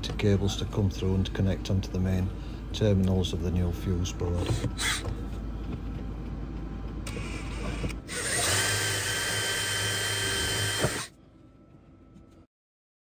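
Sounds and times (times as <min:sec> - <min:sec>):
cordless drill boring into wood: 0:07.1 - 0:11.1.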